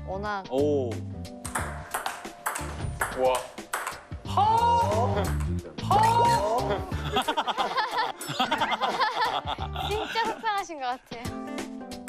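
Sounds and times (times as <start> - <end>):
background music: 0.0 - 12.0
table tennis ball clicks: 1.5 - 4.0.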